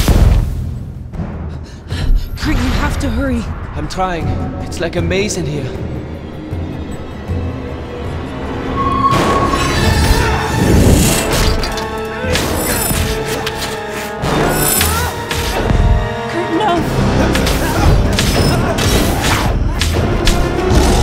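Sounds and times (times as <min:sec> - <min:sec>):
dramatic orchestral score: 0:01.1 - 0:21.0.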